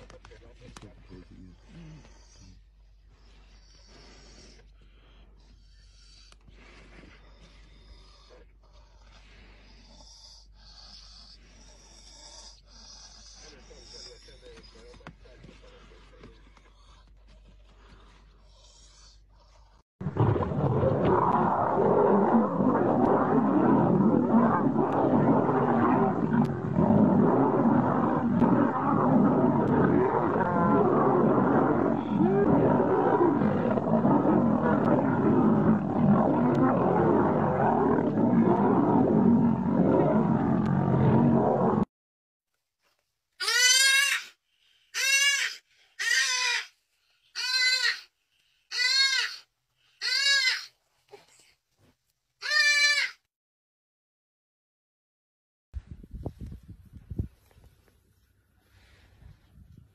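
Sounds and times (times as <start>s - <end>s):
lions growling and snarling: 0.0s - 41.9s.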